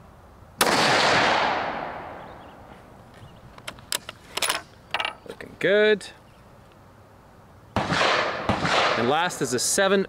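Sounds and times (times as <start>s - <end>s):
rifle shot: 0.6s - 2.2s, 7.8s - 9.3s.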